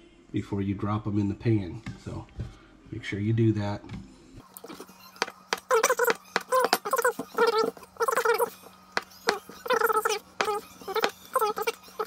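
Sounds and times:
wavering squeaks: 0:04.6 - 0:12.0
knife chopping dough on wood: 0:05.2 - 0:07.3, 0:09.0 - 0:11.8.

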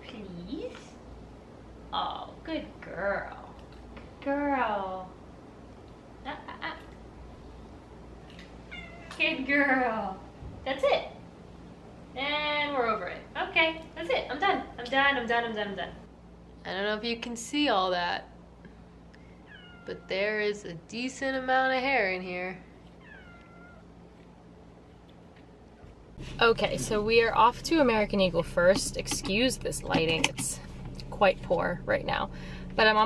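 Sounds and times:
quiet room hum: 0:00.0 - 0:33.0
cat meowing: 0:08.7 - 0:09.2, 0:19.4 - 0:20.1, 0:23.0 - 0:23.9.

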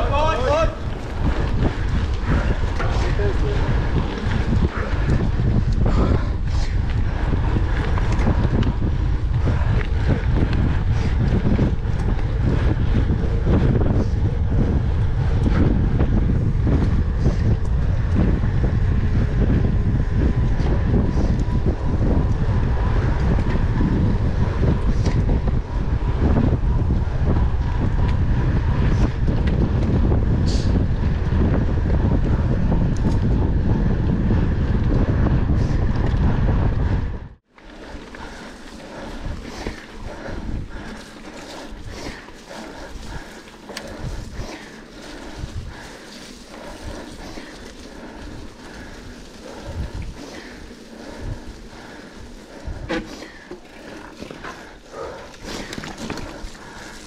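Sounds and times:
bike tyres rolling on road: 0:00.0 - 0:57.0
wind buffeting microphone: 0:00.0 - 0:57.0.

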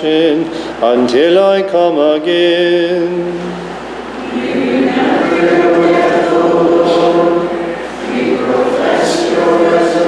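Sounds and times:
choir singing slow chant: 0:03.3 - 0:10.0.

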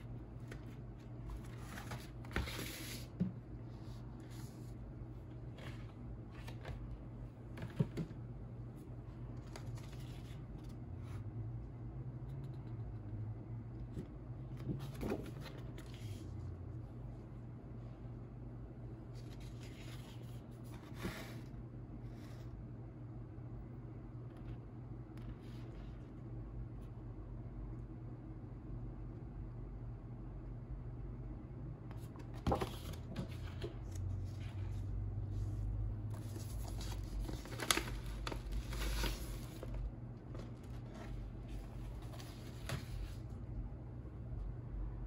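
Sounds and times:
steady low hum: 0:00.0 - 0:45.0
paper rustling and sliding: 0:00.4 - 0:04.8, 0:14.6 - 0:16.3, 0:19.1 - 0:21.5, 0:31.9 - 0:43.3.

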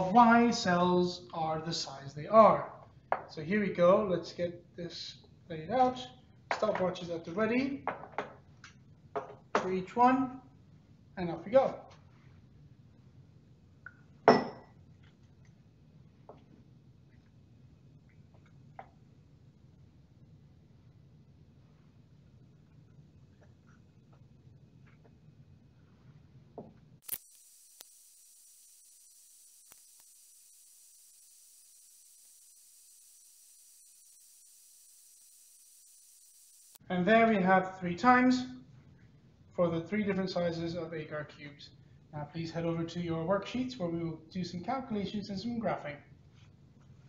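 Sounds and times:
high recording hiss: 0:00.0 - 0:47.0
glass beaker clinking: 0:14.3 - 0:14.7.

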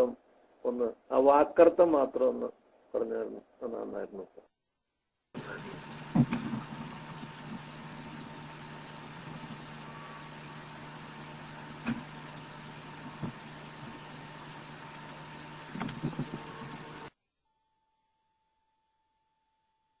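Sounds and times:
steady low hum: 0:05.3 - 0:17.1.

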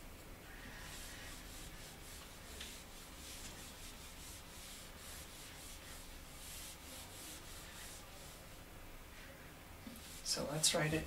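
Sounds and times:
eraser scrubbing whiteboard: 0:00.5 - 0:08.6, 0:09.9 - 0:11.0.

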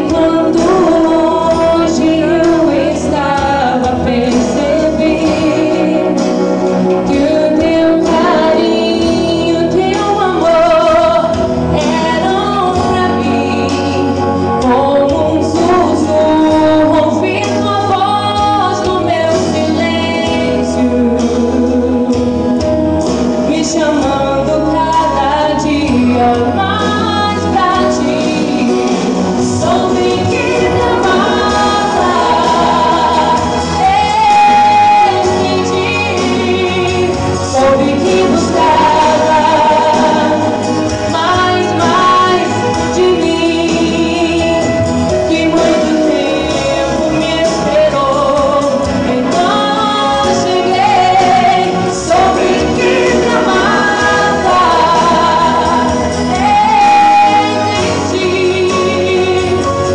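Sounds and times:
woman singing gospel: 0:00.0 - 0:22.5, 0:23.4 - 0:59.9
musical accompaniment: 0:00.0 - 0:59.9.

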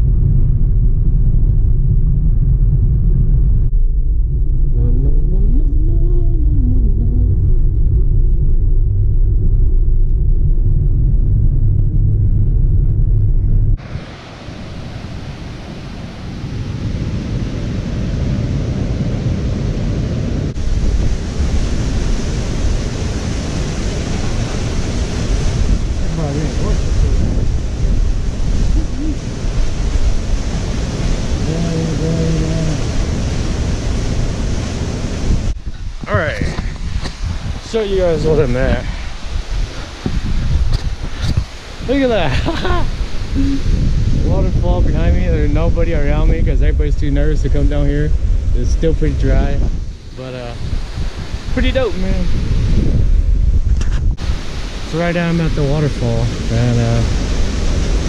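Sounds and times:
car road rumble: 0:00.0 - 0:16.4, 0:19.5 - 0:54.5.

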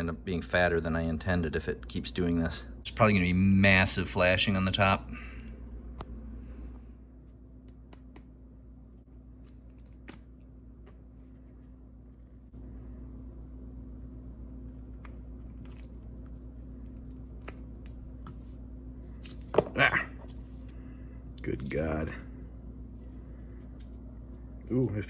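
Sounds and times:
room hum: 0:00.0 - 0:25.0.

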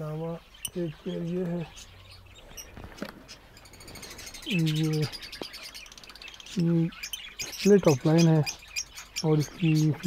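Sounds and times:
caged birds twittering: 0:00.0 - 0:10.0.

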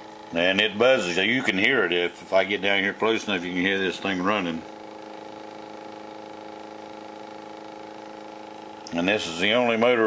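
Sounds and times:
pulse motor buzzing: 0:00.0 - 0:10.0.

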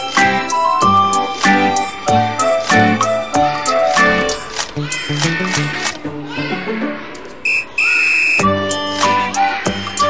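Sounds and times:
background music: 0:00.0 - 0:07.8, 0:08.4 - 0:10.0
high-pitched beeps: 0:07.4 - 0:09.1.

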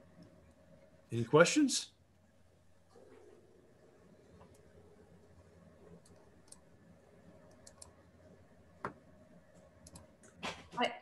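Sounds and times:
small clicks: 0:05.9 - 0:06.7, 0:07.4 - 0:08.0, 0:09.8 - 0:10.1.

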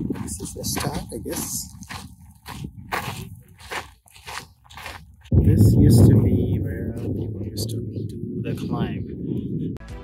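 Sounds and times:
footsteps crunching on gravel: 0:00.0 - 0:05.4.

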